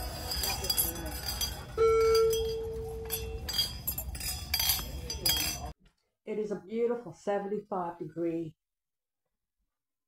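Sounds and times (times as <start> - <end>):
metal bell ringing: 0.0 - 5.7.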